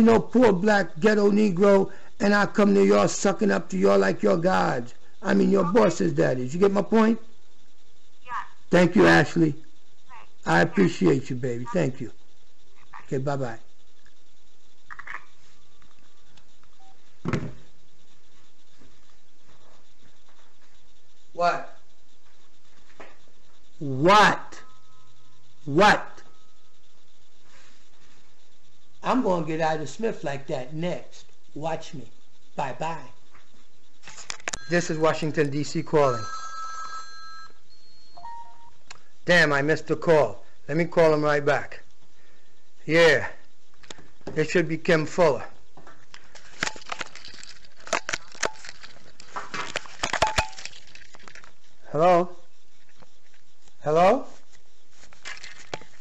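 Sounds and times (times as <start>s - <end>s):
man's voice: 0.0s - 7.1s, 10.5s - 12.1s
steady background hiss: 0.0s - 56.0s.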